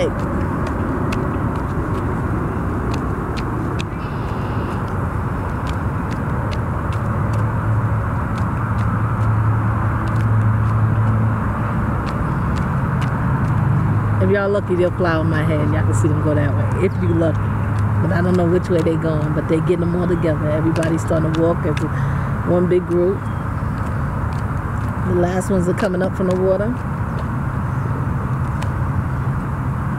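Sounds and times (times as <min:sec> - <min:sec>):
motor vehicle rumble: 0:00.0 - 0:29.9.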